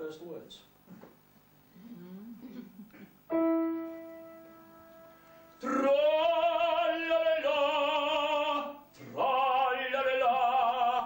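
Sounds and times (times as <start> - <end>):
singer breathing: 5.0 - 5.6
operatic tenor singing: 5.6 - 11.0.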